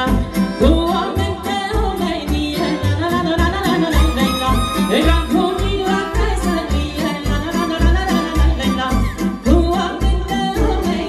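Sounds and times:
accordion: 0.0 - 11.0
woman singing: 0.0 - 11.0
violin: 0.1 - 11.0.

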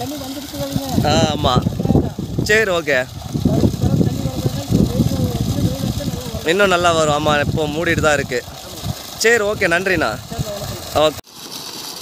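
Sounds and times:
men talking: 0.0 - 11.2
water rushing from a pipe: 0.0 - 12.0
water splashing onto soil: 0.0 - 12.0.

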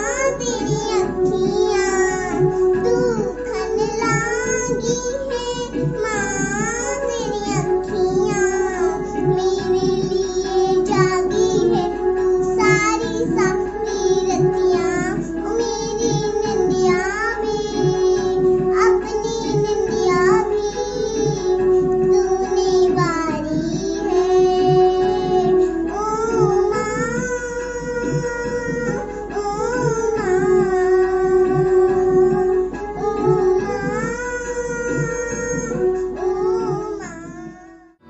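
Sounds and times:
backing music track: 0.0 - 38.0
girl singing: 0.0 - 38.0.

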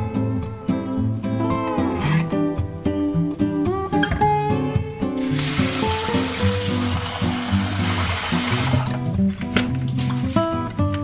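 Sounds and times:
acoustic guitar music: 0.0 - 11.0
water running into a plastic bowl: 5.2 - 9.1.

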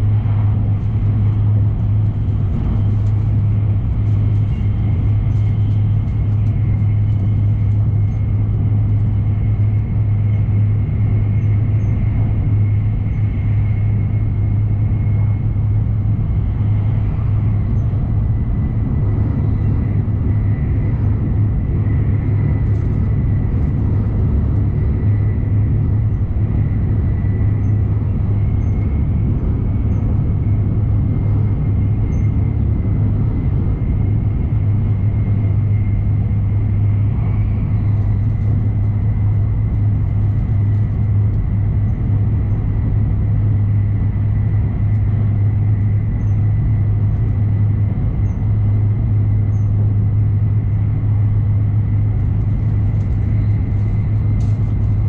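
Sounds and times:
train interior low rumble: 0.0 - 55.0.

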